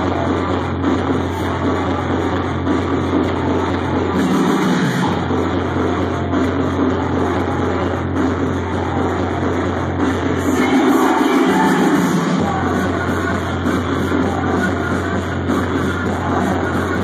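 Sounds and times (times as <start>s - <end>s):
electronic dance music: 0.0s - 17.0s.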